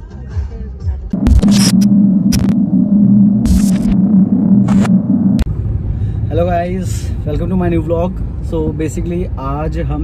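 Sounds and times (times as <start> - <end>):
glitchy static crackles: 1.2 - 5.5
loud electric buzz: 1.2 - 5.6.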